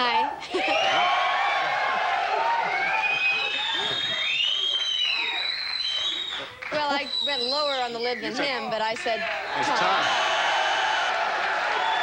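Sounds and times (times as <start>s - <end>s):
audience laughing and whooping: 0.1s - 6.7s, 8.1s - 12.0s
high whistles: 2.7s - 8.0s.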